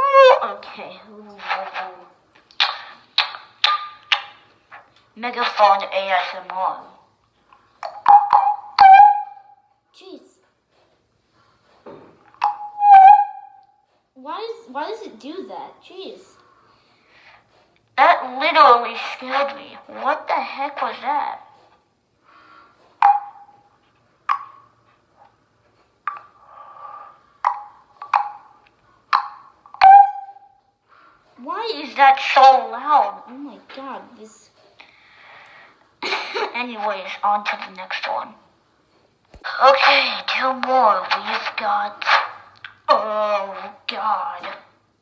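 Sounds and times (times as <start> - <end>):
megaphone amplified pops: 1.4 - 1.9, 2.6 - 4.4, 39.4 - 42.4, 44.4 - 44.7
megaphone high-pitched squeal: 8.0 - 9.5, 12.5 - 13.6, 29.8 - 30.5.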